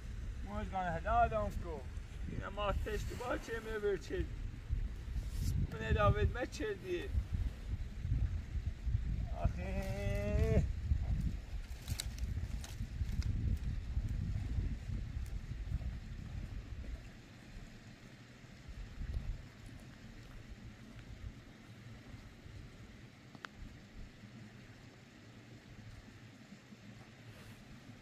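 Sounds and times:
wind rumble on microphone: 0:00.0 - 0:24.3.

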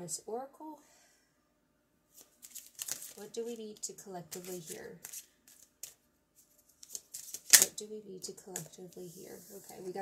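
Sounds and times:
cards shuffling by hand: 0:02.1 - 0:07.8, 0:08.5 - 0:09.9.

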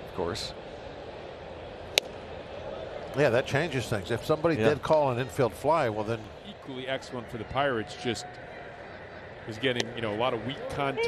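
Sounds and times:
faint ballpark crowd: 0:00.0 - 0:11.0.

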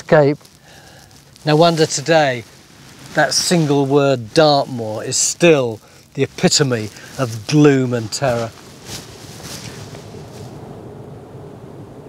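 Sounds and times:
wind on microphone: 0:08.4 - 0:12.0.

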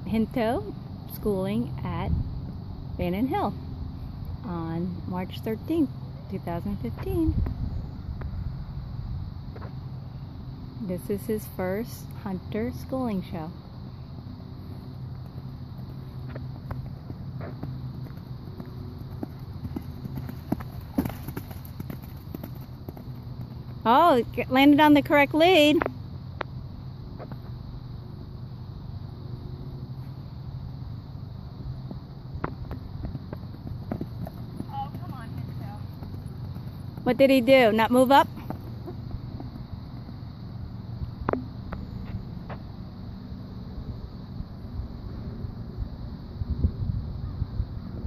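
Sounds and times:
horse hoofbeats on sand: 0:15.2 - 0:24.4, 0:31.9 - 0:40.2.

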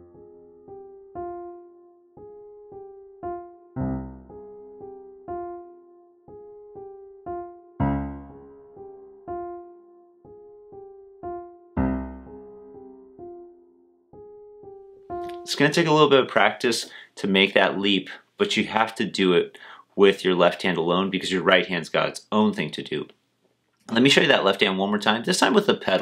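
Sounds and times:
soft piano figure: 0:00.0 - 0:16.2
low piano octaves: 0:00.0 - 0:16.6.

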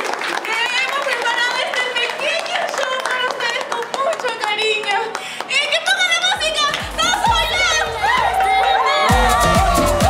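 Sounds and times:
people clapping along: 0:00.0 - 0:10.0
backing music with deep bass beat: 0:06.8 - 0:10.0.

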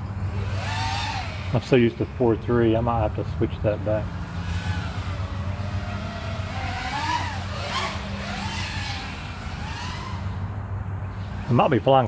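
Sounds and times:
quadcopter motors whining: 0:00.0 - 0:12.0
steady low hum: 0:00.0 - 0:12.0.

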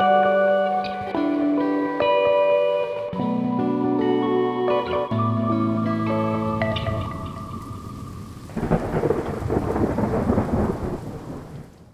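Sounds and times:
rain: 0:00.0 - 0:03.1, 0:06.0 - 0:11.9
held guitar note: 0:00.0 - 0:09.4
thunder rumble: 0:06.8 - 0:11.9.

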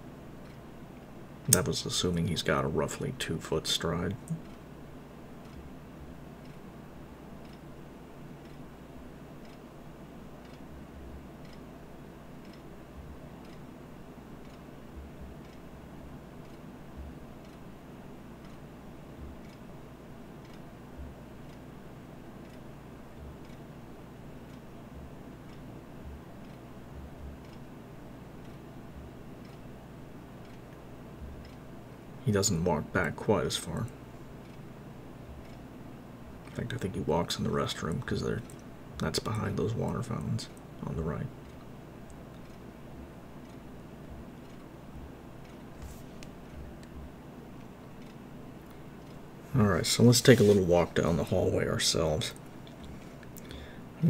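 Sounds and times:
low room hum: 0:00.0 - 0:54.0.

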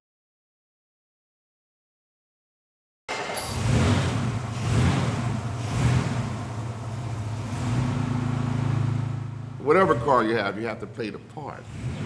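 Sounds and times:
car engine revving: 0:03.1 - 0:12.0.

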